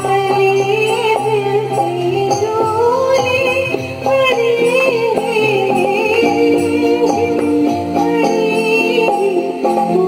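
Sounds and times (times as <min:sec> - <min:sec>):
musical accompaniment with light beat: 0:00.0 - 0:10.0
woman singing into microphone: 0:00.0 - 0:10.0.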